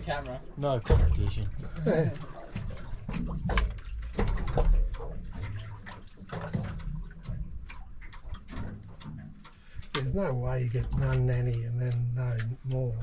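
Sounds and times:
water lapping against boat hull: 0.0 - 13.0.

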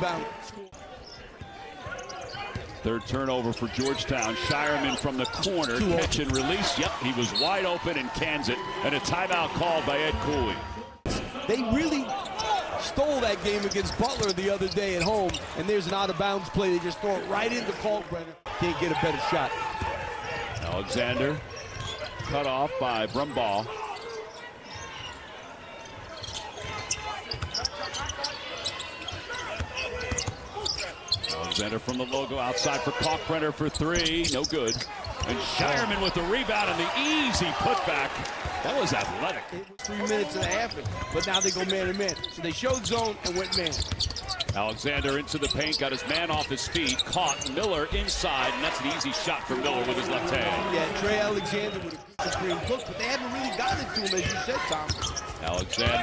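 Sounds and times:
arena crowd noise: 0.0 - 56.0
shoe squeaks on floor: 26.1 - 36.2, 39.8 - 49.1, 51.0 - 56.0.

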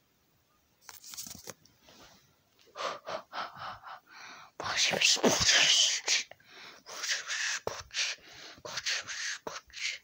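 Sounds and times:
person gasping: 2.7 - 4.6, 6.3 - 6.9, 7.6 - 8.8.

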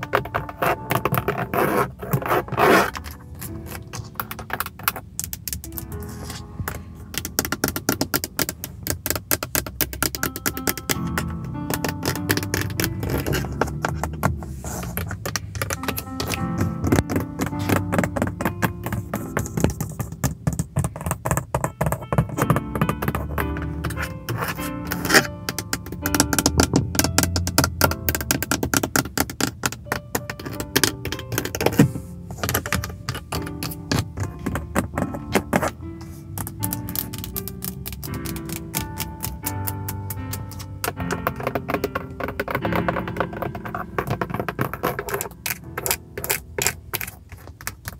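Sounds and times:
fingernails tapping on plastic: 0.0 - 6.1, 6.7 - 47.9
soft spa music: 0.0 - 47.9.

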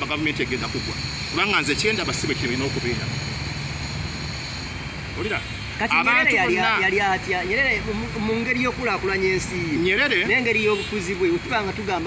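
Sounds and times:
man speaking: 5.2 - 12.0.

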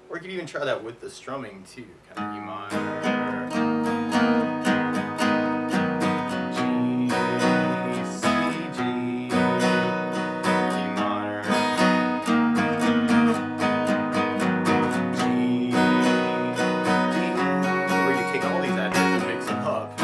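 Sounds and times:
acoustic guitar strumming: 2.1 - 20.0.

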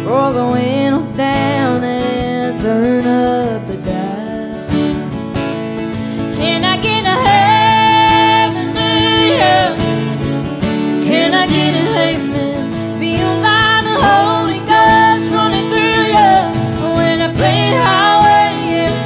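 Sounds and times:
woman singing: 0.0 - 5.0, 6.3 - 10.2, 10.9 - 19.0
strummed acoustic guitars: 0.0 - 19.0.

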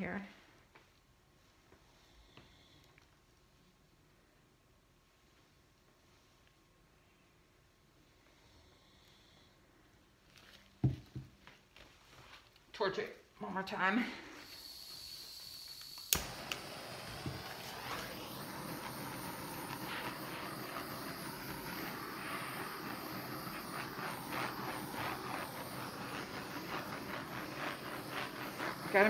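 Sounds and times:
torch flame hissing: 13.7 - 29.0
gas torch ignition click: 14.5 - 29.0.

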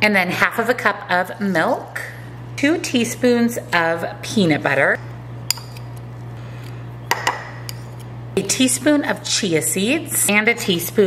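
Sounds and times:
steady low hum: 0.0 - 11.0
spoon scraping peanut butter: 7.7 - 8.1.

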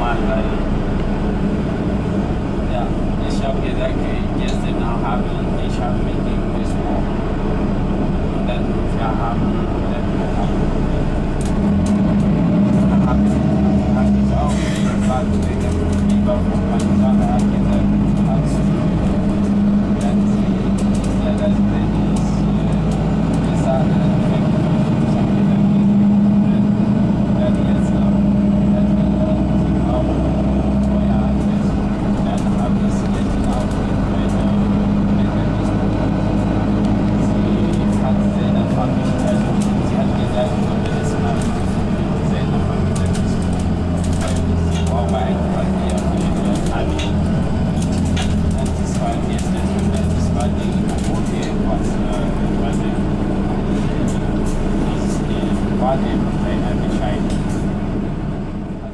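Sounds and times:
bus engine and road drone: 0.0 - 58.9.

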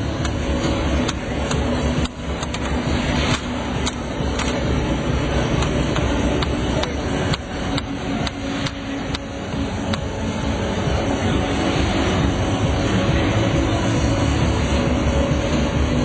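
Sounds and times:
robots mechanical rumble: 0.0 - 16.0.

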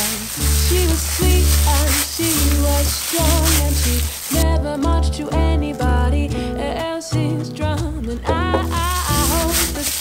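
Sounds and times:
gloved hand squishing meat mixture: 0.0 - 4.4, 8.8 - 10.0.

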